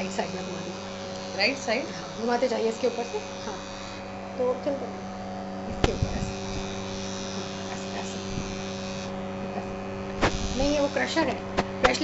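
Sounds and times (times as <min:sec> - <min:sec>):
kitchen appliance electrical hum: 0:00.0 - 0:12.0.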